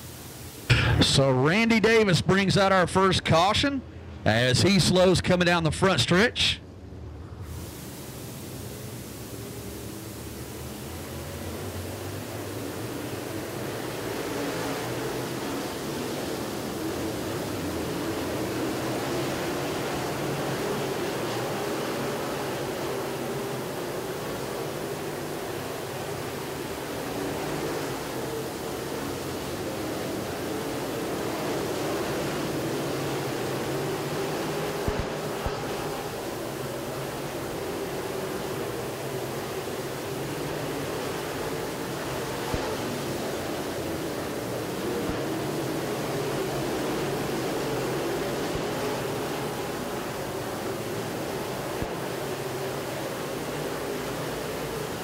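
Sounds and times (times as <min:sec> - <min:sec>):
drone of race car engines: 0:00.0 - 0:55.0.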